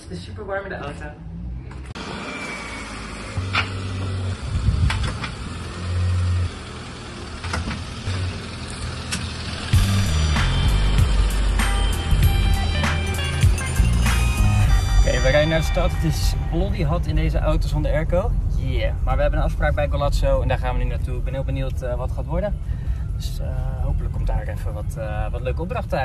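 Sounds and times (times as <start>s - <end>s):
car engine pulling away: 1.2s - 26.0s
background music: 9.6s - 18.3s.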